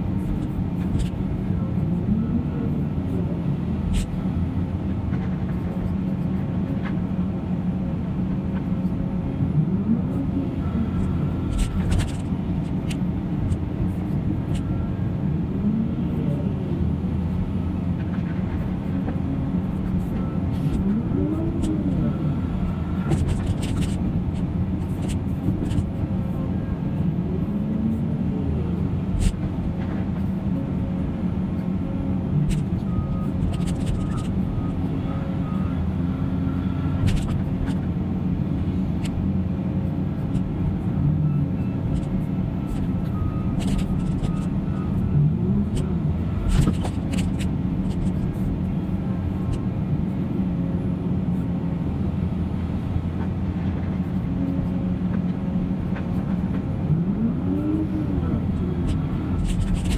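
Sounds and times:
excavator engine running: 0.0s - 59.9s.

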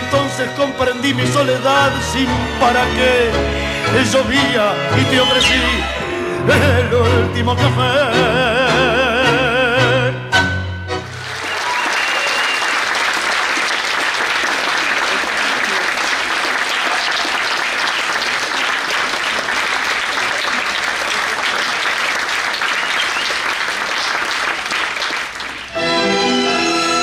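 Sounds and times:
audience applauding: 11.0s - 26.1s.

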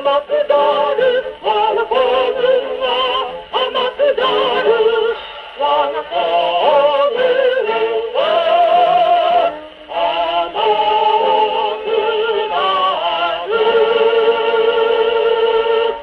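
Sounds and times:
singing on gramophone record: 0.0s - 16.0s.

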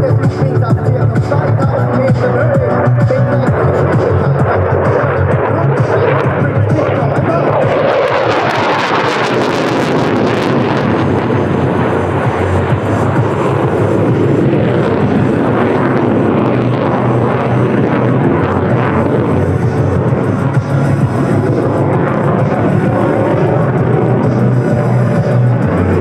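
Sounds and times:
jet engine at high power: 0.0s - 26.0s
music: 0.0s - 26.0s.

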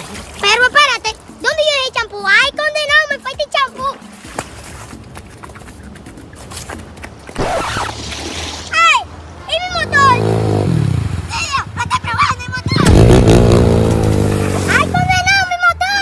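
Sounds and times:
water splashing: 0.0s - 11.8s, 12.8s - 15.5s
dirt bike engine revving: 9.7s - 11.9s, 12.6s - 15.2s.

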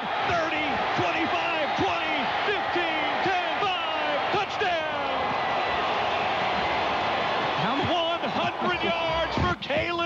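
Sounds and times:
excited announcer commentating: 0.0s - 5.4s, 7.6s - 10.0s
stadium crowd noise: 0.0s - 10.0s.

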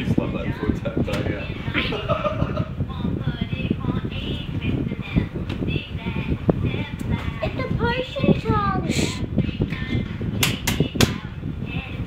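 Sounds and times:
sharp hand claps: 10.4s - 11.2s.

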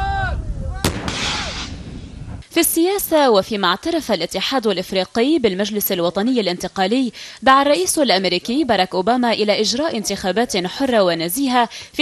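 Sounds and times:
rocket launcher firing: 0.8s - 2.4s.

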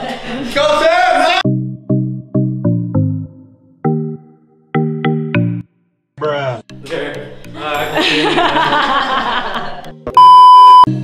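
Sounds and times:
people laughing: 0.0s - 0.8s, 7.6s - 10.1s
background music: 1.4s - 11.0s
high electronic bleep: 10.2s - 10.9s.

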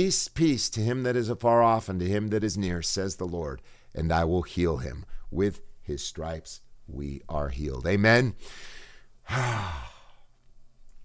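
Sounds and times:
man sighing: 8.5s - 10.3s.

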